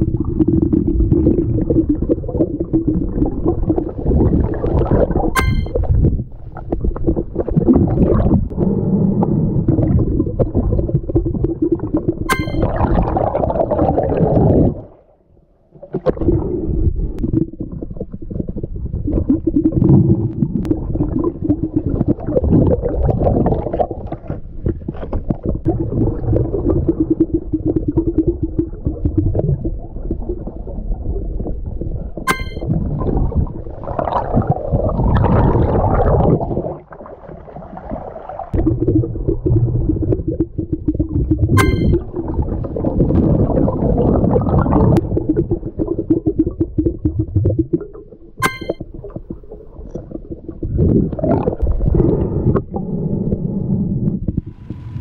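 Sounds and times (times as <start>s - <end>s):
underwater rumble: 0.0s - 55.0s.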